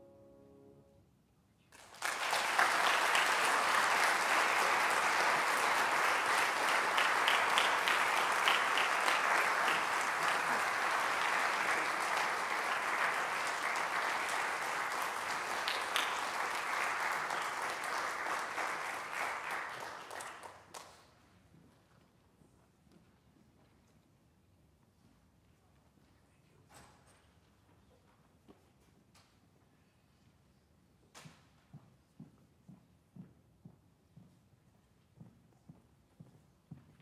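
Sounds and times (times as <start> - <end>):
audience applauding: 1.8 - 21.0.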